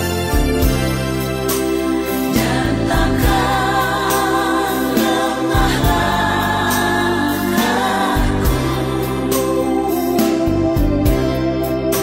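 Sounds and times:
instrumental backing with beat: 0:00.0 - 0:12.0
choir singing: 0:02.1 - 0:10.6.

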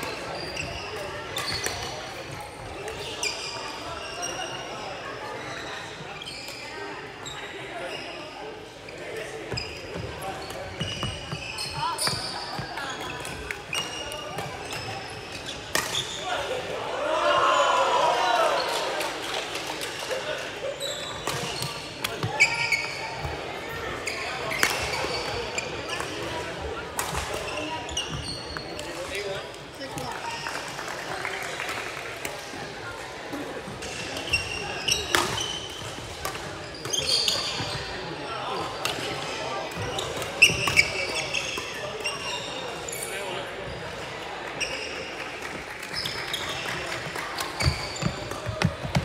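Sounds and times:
shoes squeaking on court: 0:00.0 - 0:16.4, 0:20.7 - 0:30.6, 0:33.8 - 0:45.2, 0:45.8 - 0:49.0.

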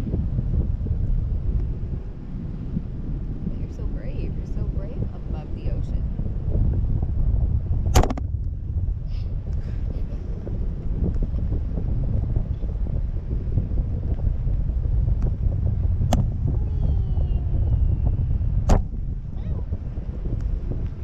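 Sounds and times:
wind buffeting microphone: 0:00.0 - 0:21.0
sharp knock: 0:07.9 - 0:08.2.

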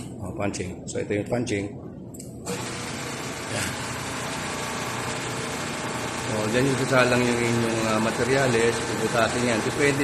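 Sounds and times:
hydraulic power unit running: 0:02.4 - 0:10.0.

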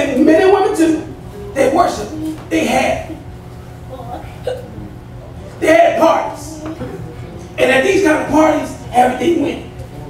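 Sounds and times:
sound system hum: 0:00.0 - 0:10.0
faint voice sounds: 0:06.4 - 0:07.6.

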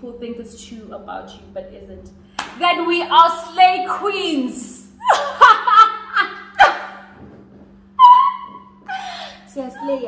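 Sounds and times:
women shrieking with laughter: 0:05.0 - 0:07.0, 0:08.0 - 0:10.0.

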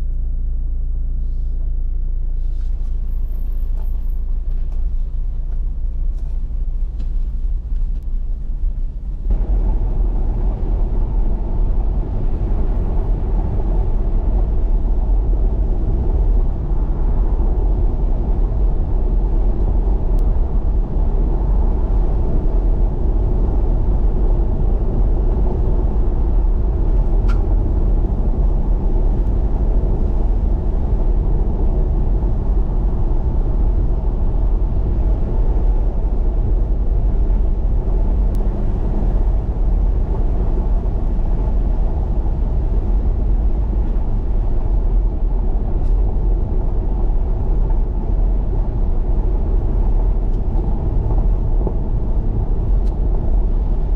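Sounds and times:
car engine: 0:00.0 - 0:53.9.

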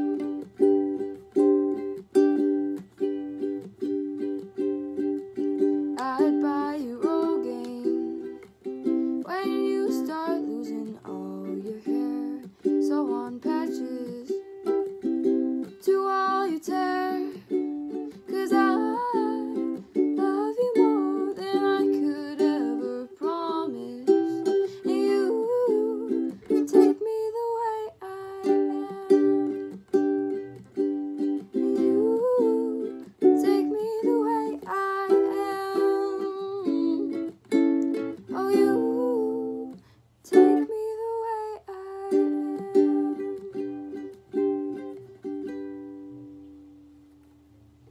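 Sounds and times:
girl singing: 0:00.0 - 0:46.7
ukulele strumming: 0:00.0 - 0:47.9.

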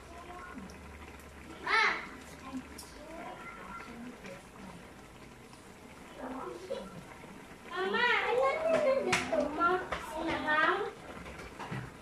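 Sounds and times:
young child's voice: 0:01.5 - 0:04.1.

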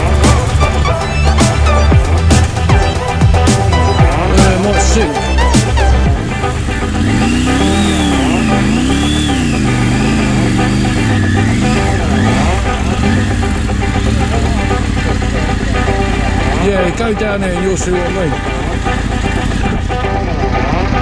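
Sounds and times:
rising and falling pitched sound: 0:00.0 - 0:17.0
motorcycle engine running: 0:00.0 - 0:21.0
music: 0:00.0 - 0:21.0.

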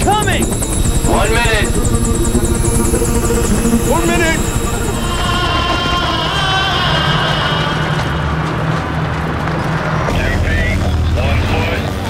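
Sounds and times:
film score music: 0:00.0 - 0:12.0
helicopter rotor and engine rumble: 0:00.0 - 0:12.0.

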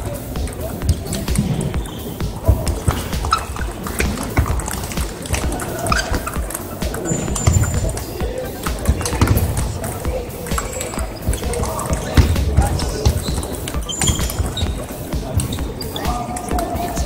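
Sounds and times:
music: 0:00.0 - 0:17.0
table tennis balls clicking: 0:00.0 - 0:17.0.

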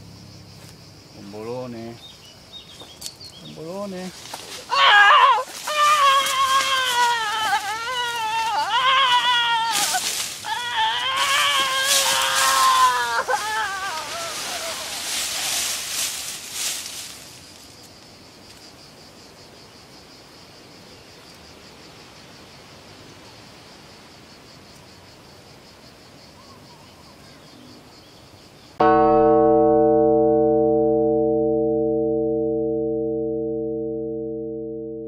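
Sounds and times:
chord of sustained ringing tones: 0:28.8 - 0:35.0.

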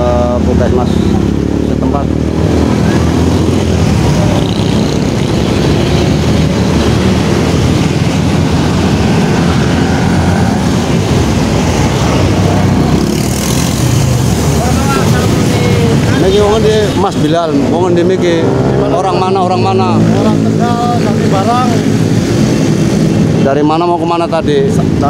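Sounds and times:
truck passing: 0:00.0 - 0:23.4
motorcycle engines passing: 0:00.0 - 0:25.0.

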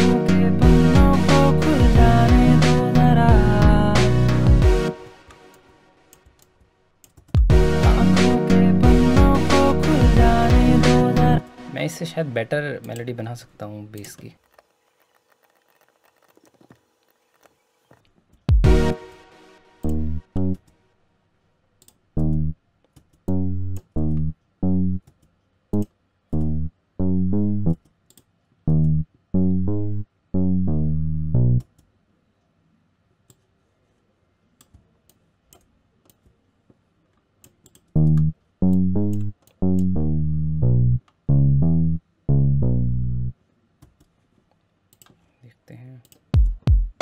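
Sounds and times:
low acoustic bass notes: 0:00.0 - 0:04.9, 0:07.4 - 0:11.4, 0:18.5 - 0:19.0, 0:19.8 - 0:20.6, 0:22.2 - 0:22.6, 0:23.3 - 0:25.0, 0:25.8 - 0:27.8, 0:28.7 - 0:31.6, 0:37.9 - 0:43.4.

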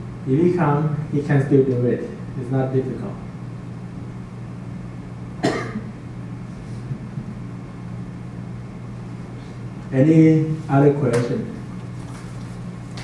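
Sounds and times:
low room hum: 0:00.0 - 0:13.0
person coughing: 0:05.4 - 0:05.9.

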